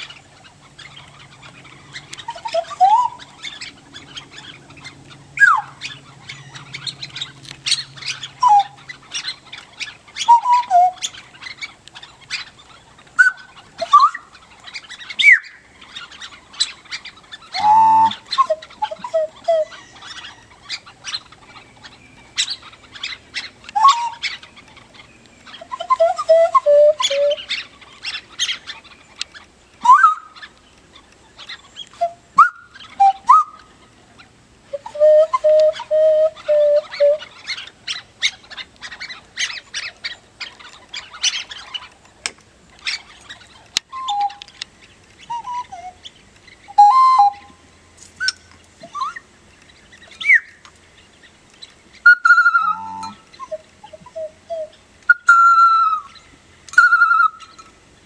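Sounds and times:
buzzy bird call: 0:00.0 - 0:42.0, 0:42.8 - 0:47.6, 0:48.2 - 0:49.3, 0:49.9 - 0:57.8
bird-call whistles chirping: 0:01.9 - 0:11.7, 0:13.2 - 0:15.6, 0:16.2 - 0:24.4, 0:25.5 - 0:28.6, 0:29.8 - 0:30.5, 0:31.7 - 0:33.7, 0:34.7 - 0:38.4, 0:43.9 - 0:44.5, 0:45.2 - 0:46.1, 0:46.7 - 0:47.6, 0:48.2 - 0:49.3, 0:50.1 - 0:50.6, 0:52.0 - 0:57.7.

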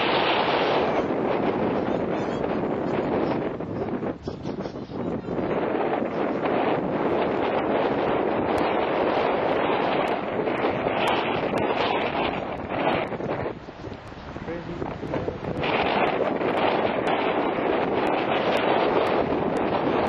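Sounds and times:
wind on microphone: 0:00.0 - 0:20.0.

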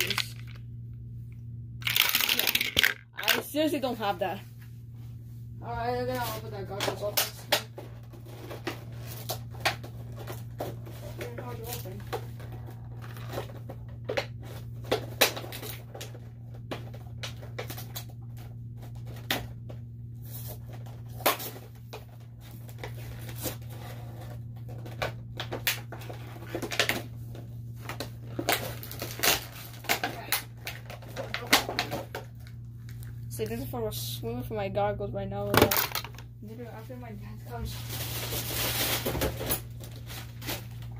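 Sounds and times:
steady low hum: 0:00.0 - 0:40.9
packaging being opened by hand: 0:27.8 - 0:33.1.

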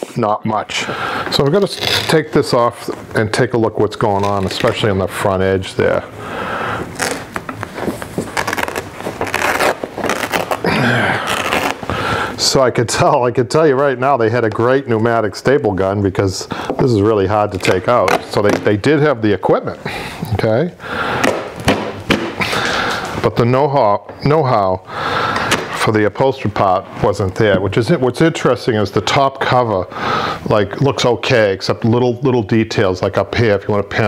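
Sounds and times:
upholstery fabric ripping: 0:06.9 - 0:07.4, 0:08.0 - 0:11.9.

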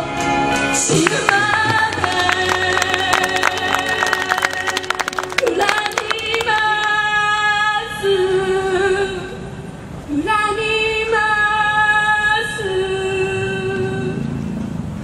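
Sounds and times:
woman singing slow song: 0:01.0 - 0:09.5.

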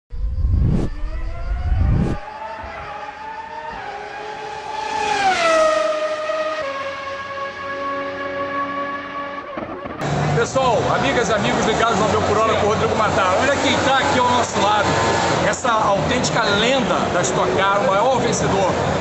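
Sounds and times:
race car engine: 0:00.1 - 0:19.0.

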